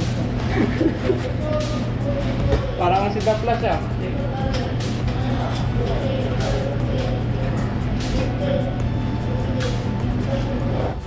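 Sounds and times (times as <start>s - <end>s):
background music: 0.0s - 11.0s
low machine drone: 0.0s - 11.0s
kitchen work clicks and clatter: 2.3s - 8.4s.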